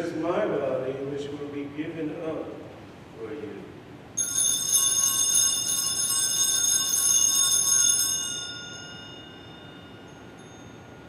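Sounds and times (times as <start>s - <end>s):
altar bells jingling: 4.2s - 11.0s.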